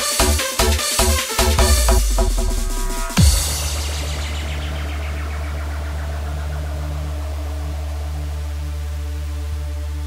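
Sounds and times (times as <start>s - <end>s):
cymbal wash: 2.0s - 9.4s
held low synth bass note: 2.0s - 10.0s.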